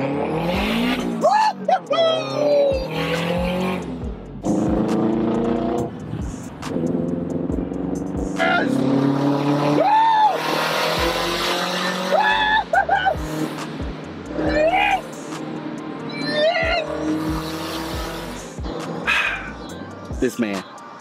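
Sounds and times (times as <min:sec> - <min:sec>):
car engine revving: 0:00.0 - 0:19.8.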